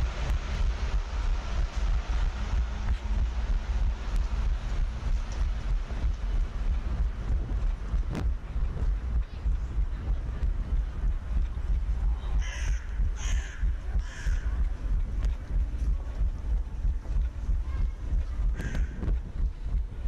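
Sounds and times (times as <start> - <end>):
wind rumble on microphone: 0.0 - 20.0
crow cawing: 12.4 - 14.5.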